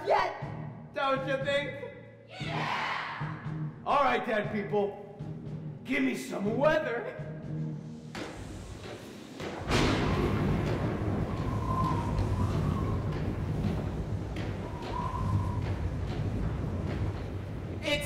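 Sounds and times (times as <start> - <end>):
low rumbling: 9.4 - 18.0
rushing wind: 9.6 - 18.0
thunder crash: 9.6 - 18.0
wind whistle: 10.2 - 17.3.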